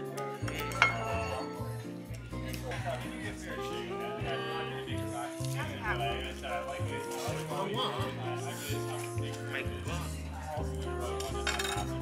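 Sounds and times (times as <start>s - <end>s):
background music: 0.0s - 12.0s
cutlery clinking on plate: 0.5s - 1.2s, 11.3s - 12.0s.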